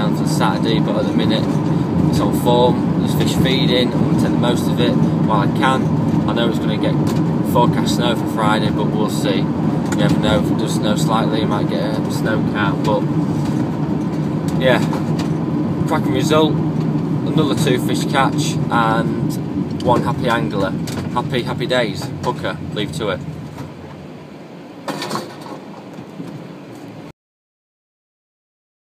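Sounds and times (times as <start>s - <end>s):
vehicle engine droning: 0.0s - 27.1s.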